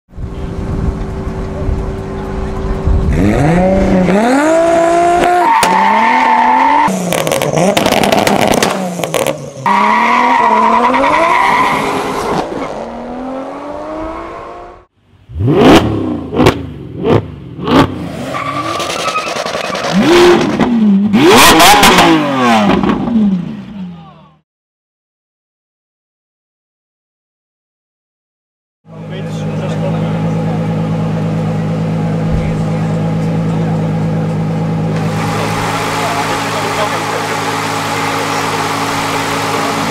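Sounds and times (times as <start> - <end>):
race car engines accelerating: 0.2 - 23.9, 28.9 - 39.9
short sharp engine revs: 15.3 - 23.0.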